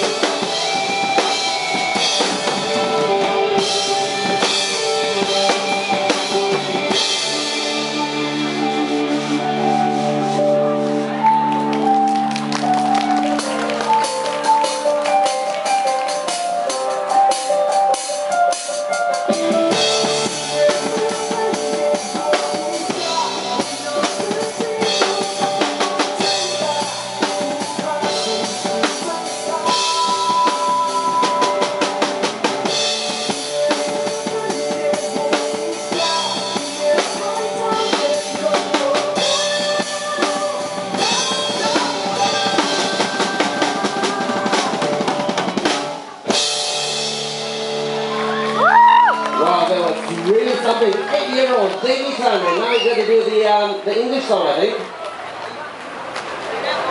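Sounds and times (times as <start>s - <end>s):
acoustic drum kit playing: 0.0s - 50.4s
backing music: 0.0s - 54.7s.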